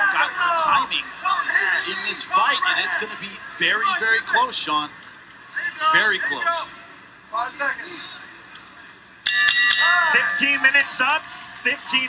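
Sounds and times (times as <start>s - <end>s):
metal ring bell struck: 9.3s - 10.4s.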